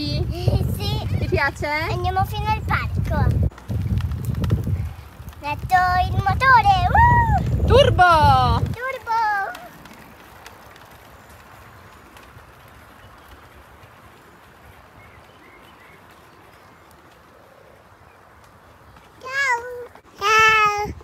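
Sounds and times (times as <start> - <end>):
bicycles rolling on pavement: 0.0 - 21.0.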